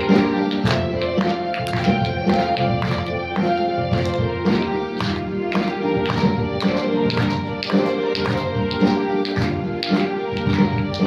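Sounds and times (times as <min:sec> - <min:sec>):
electronic keyboard string-like tune: 0:00.0 - 0:11.0
keyboard rhythm accompaniment: 0:00.0 - 0:11.0.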